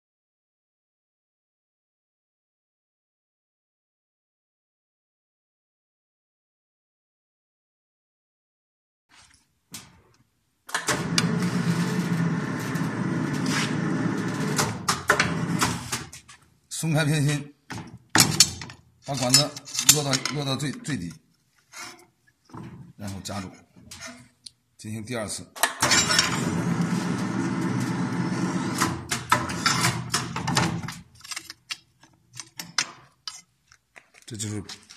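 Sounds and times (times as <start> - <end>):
pipe-bending machine motor hum: 10.9 - 15.6
metallic clicks and knocks: 17.7 - 20.9, 30.0 - 34.9
metal grating on metal: 22.7 - 24.4.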